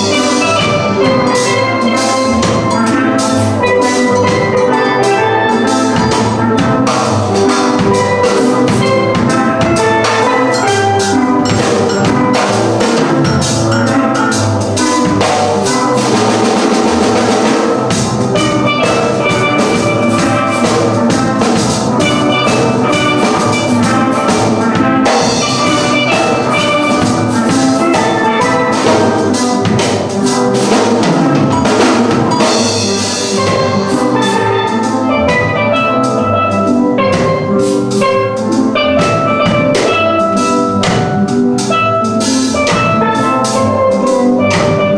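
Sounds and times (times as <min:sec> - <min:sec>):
drum kit beat: 0:00.0 - 0:44.9
steel pan ensemble playing: 0:00.0 - 0:44.9.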